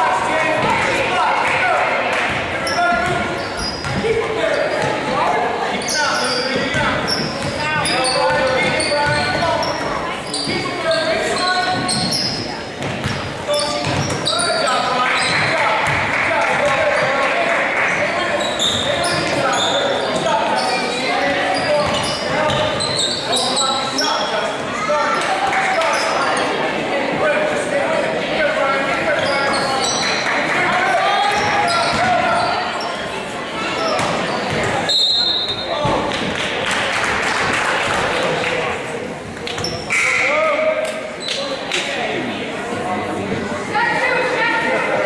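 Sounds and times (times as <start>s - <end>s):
sneakers squeaking: 0.4s - 26.6s, 28.8s - 36.4s, 39.2s - 41.6s.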